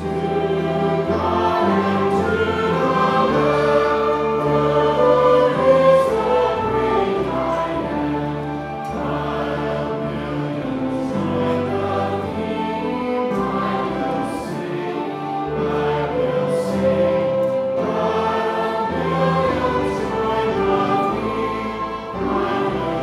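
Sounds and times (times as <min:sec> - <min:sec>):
choir singing a hymn: 0:00.0 - 0:23.0
piano accompaniment: 0:00.0 - 0:23.0.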